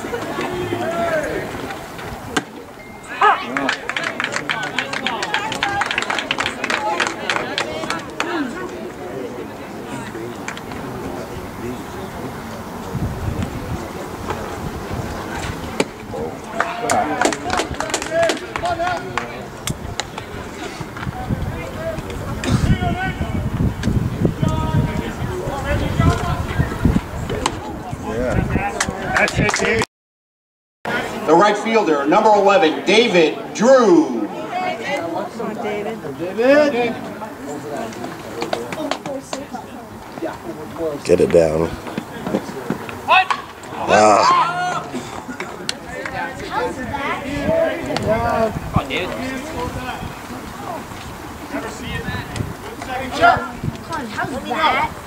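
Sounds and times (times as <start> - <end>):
distant people calling out: 0.0 - 23.5, 32.0 - 48.7
outdoor crowd background: 0.0 - 29.9, 30.8 - 55.0
man talking: 41.0 - 41.8.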